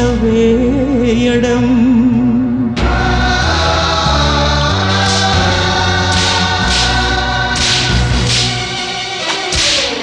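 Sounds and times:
orchestral backing: 2.5 - 10.0
choir holding long notes: 2.6 - 10.0
sharp hissing strikes: 5.0 - 10.0.

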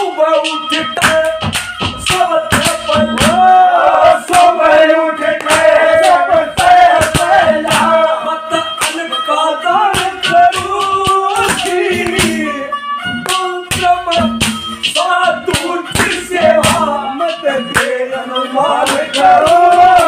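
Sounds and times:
harmonium: 0.0 - 20.0
man singing devotional song: 0.0 - 20.0
sharp percussion strikes: 0.4 - 9.1, 9.8 - 20.0.

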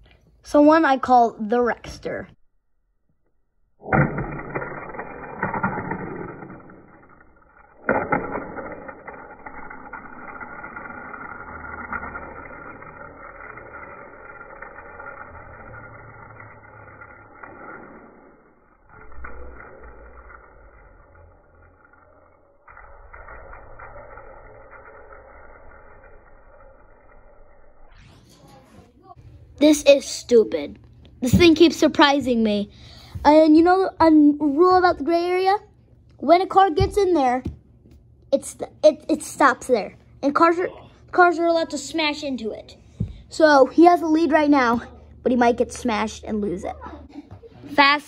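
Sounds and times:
toy car rolling rattle on track: 4.1 - 28.4.

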